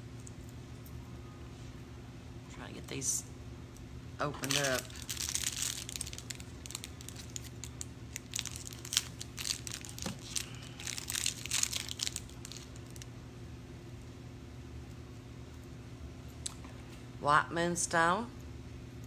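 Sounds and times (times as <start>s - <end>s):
plastic packages crinkling and tearing: 4.3s - 13.1s.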